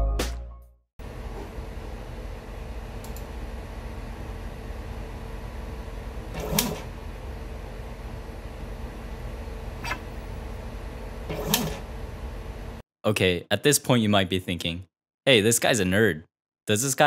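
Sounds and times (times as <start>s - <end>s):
lab equipment hum: 1.0s - 12.8s.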